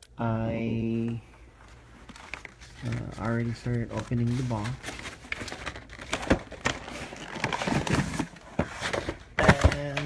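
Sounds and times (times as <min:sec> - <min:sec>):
packaging clicks and rustles: 0:01.0 - 0:10.0.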